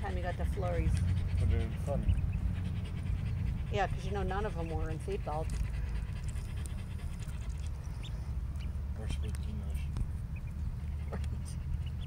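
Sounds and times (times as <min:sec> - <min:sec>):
bills pecking and dabbling: 0:00.0 - 0:12.0
steady low rumble: 0:00.0 - 0:12.0
ducklings peeping: 0:01.4 - 0:12.0.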